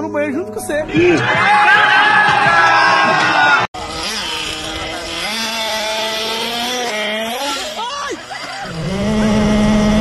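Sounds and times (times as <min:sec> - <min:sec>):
motor droning: 0:03.3 - 0:10.0.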